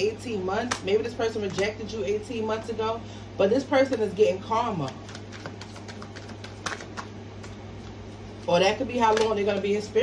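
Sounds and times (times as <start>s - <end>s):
steady low hum: 0.0s - 10.0s
cards clicking and tapping: 4.8s - 8.0s, 9.0s - 9.7s.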